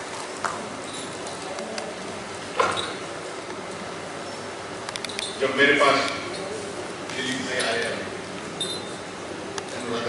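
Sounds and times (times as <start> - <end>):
hall room noise: 0.0 - 10.0.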